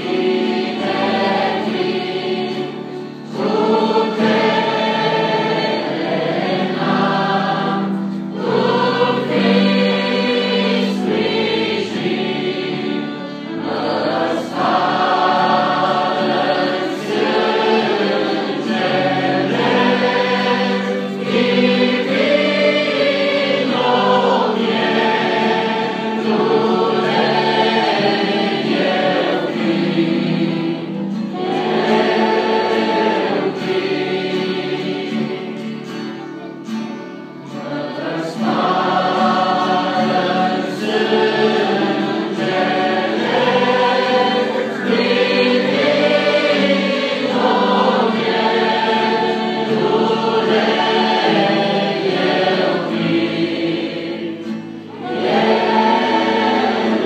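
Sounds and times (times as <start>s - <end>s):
acoustic guitar: 0.0s - 57.0s
choir singing a hymn: 0.0s - 57.0s.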